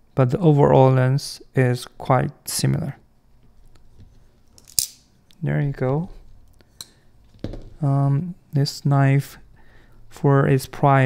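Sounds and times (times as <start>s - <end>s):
knife handling sounds: 3.9s - 5.1s.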